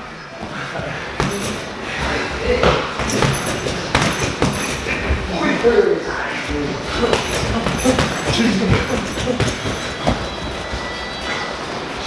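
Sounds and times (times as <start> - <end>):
steady background hum: 0.0 - 12.0
short sparring thuds: 2.6 - 5.0.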